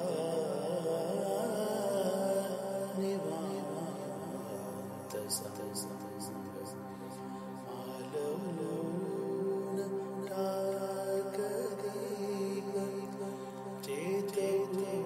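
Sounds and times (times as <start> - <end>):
person singing slow melody: 0.0 - 15.0.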